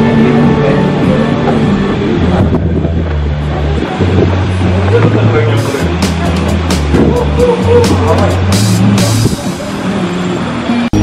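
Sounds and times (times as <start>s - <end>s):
background music with bass line: 0.0s - 11.0s.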